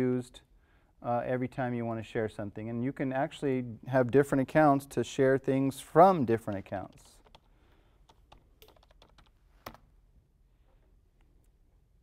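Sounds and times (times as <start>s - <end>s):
computer keyboard keystrokes: 6.4s - 9.8s.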